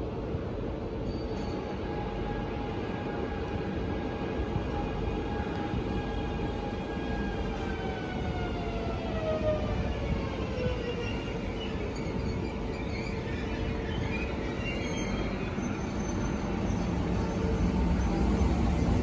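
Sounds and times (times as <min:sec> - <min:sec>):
train rumble: 0:00.0 - 0:19.0.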